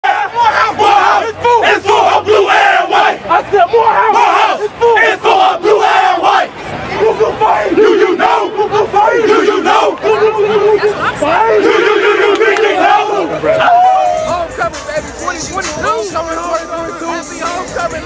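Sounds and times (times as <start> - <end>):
crowd of men shouting and chanting: 0.0 - 18.0.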